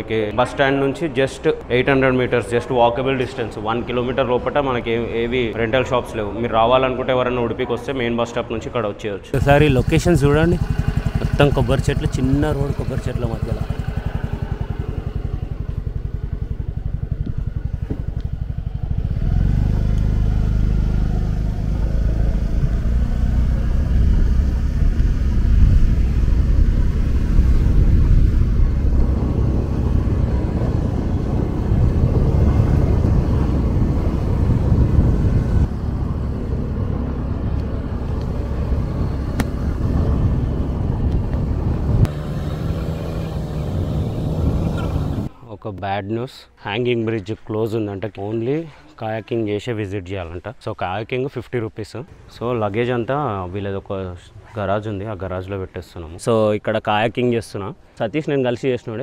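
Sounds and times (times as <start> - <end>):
motor scooter engine running: 9.4 - 45.3.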